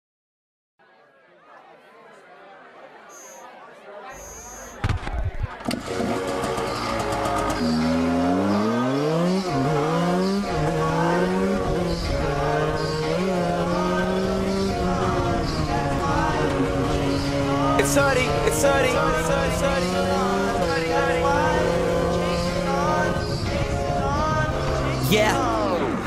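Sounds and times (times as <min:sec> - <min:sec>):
two-stroke motorcycle engine revving: 0:05.7 - 0:26.0.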